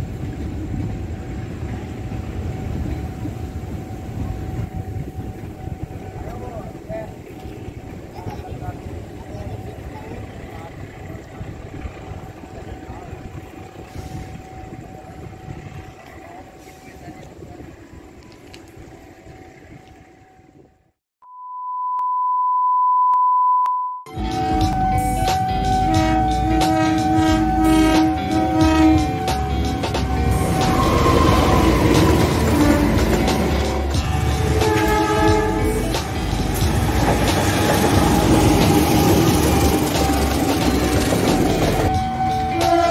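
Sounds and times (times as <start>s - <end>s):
electric train rumbling on tracks: 0.0s - 21.0s, 24.1s - 42.9s
steady electronic beep: 21.2s - 28.0s
background music: 24.1s - 42.9s.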